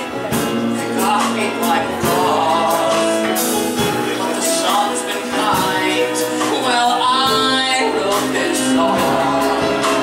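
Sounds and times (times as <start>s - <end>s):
live band: 0.0s - 10.0s
man singing: 0.7s - 10.0s.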